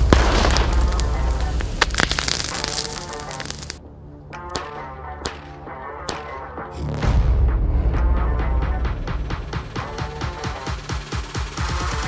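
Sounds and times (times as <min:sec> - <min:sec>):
sharp cracks and pops: 0:00.0 - 0:03.8
background music: 0:00.0 - 0:12.0.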